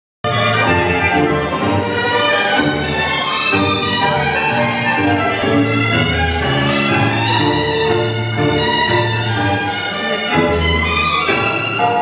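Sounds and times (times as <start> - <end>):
tango orchestra music: 0.2 - 12.0.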